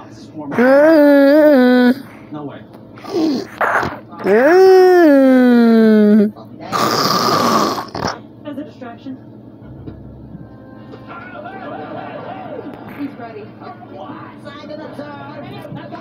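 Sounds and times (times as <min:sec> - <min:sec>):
person's drawn-out vocal sound: 0:00.5 - 0:02.1, 0:03.0 - 0:03.5, 0:04.2 - 0:06.3
cartoon voices from phone speaker: 0:04.2 - 0:06.3.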